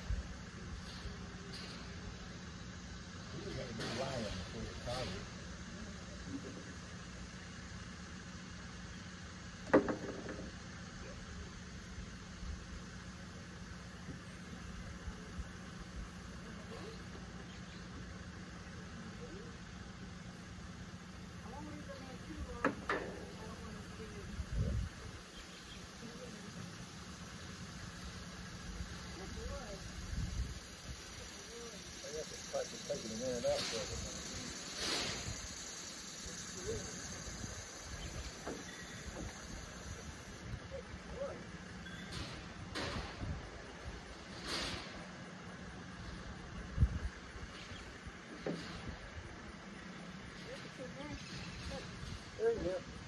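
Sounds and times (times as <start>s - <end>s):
engine idling: 0.0s - 53.0s.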